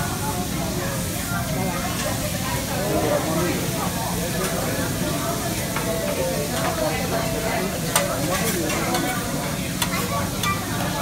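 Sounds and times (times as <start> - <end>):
hot griddle sizzling: 0.0 - 11.0.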